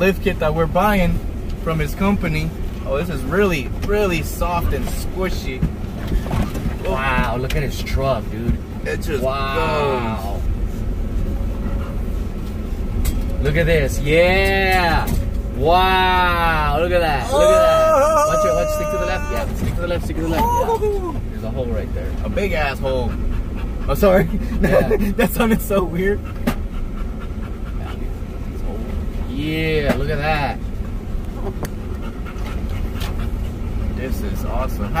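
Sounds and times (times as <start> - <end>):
van engine rumble: 0.0 - 35.0.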